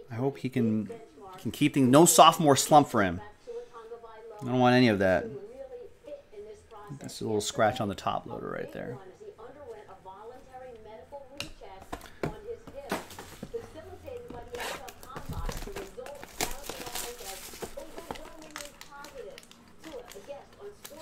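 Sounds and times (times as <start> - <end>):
wrappers crinkling: 12.8 - 21.0.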